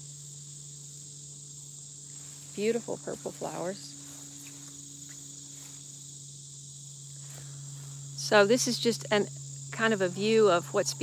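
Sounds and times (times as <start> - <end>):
crickets chirping: 0.0 - 11.0
low steady hum: 0.0 - 11.0.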